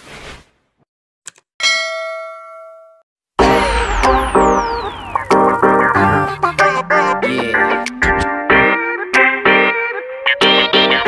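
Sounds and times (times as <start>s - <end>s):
bell-like ding: 1.6s - 4.6s
whoosh: 3.4s - 7.3s
loud music: 3.4s - 9.9s.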